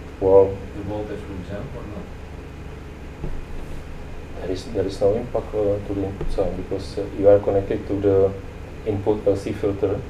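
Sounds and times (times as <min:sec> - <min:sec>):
steady low hum with hiss: 0:00.0 - 0:10.0.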